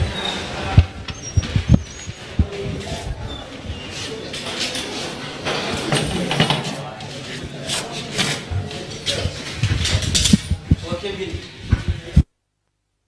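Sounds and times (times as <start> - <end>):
people talking at once: 0.0 - 12.2.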